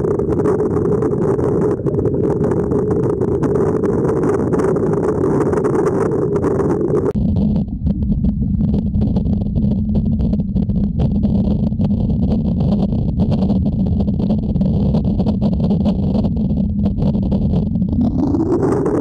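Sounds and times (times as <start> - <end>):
underwater rumble of pool water: 0.0 - 19.0.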